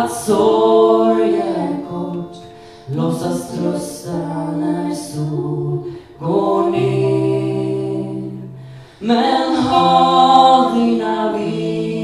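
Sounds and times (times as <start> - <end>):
voices singing a ballad: 0.0 - 12.0.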